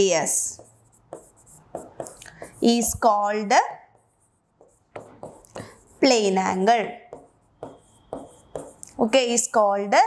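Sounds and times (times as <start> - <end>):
chalk scratching on blackboard: 0.0 - 9.3.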